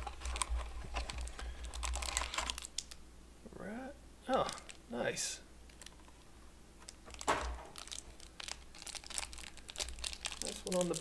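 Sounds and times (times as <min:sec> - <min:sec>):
foil wrapper crinkling: 0:00.0 - 0:03.0, 0:05.7 - 0:06.2, 0:06.8 - 0:11.0.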